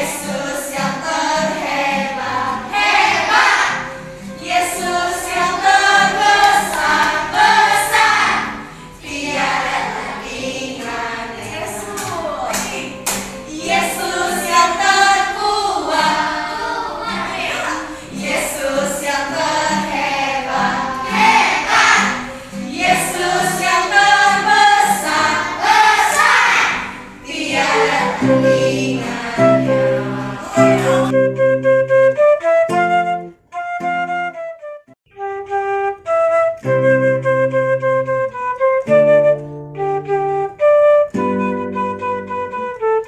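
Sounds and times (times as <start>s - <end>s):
children and adults singing: 0.0s - 31.1s
acoustic guitar: 0.0s - 43.0s.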